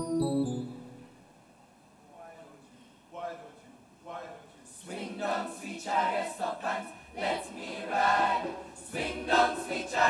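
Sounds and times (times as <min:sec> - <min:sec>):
boys' choir singing: 0:04.8 - 0:10.0.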